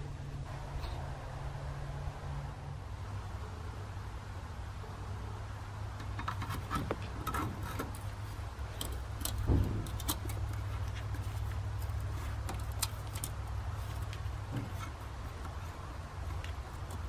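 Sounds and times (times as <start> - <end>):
steady low rumble: 0.0 - 6.0.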